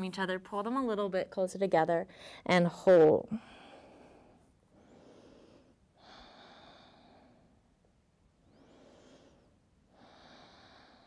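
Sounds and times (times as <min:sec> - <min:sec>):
faint slow breathing: 0:03.4 - 0:07.8, 0:08.4 - 0:11.0.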